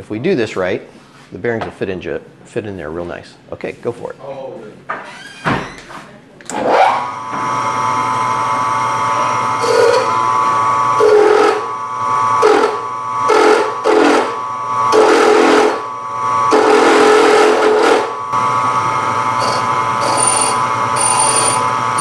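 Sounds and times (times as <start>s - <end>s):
milling machine spindle whine: 6.8s - 22.0s
drill bit cutting metal: 9.0s - 22.0s.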